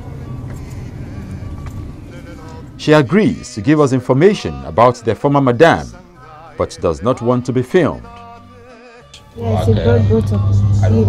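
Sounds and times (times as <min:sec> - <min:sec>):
car cabin low rumble: 0:00.0 - 0:03.4, 0:09.4 - 0:11.0
person narrating: 0:02.8 - 0:08.2, 0:09.3 - 0:11.0.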